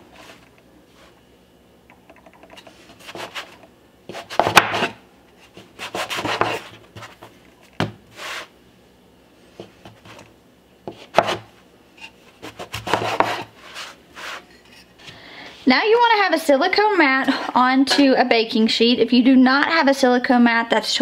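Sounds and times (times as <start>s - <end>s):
scraper scraping dough on wooden board: 2.7s - 7.3s, 10.9s - 14.6s.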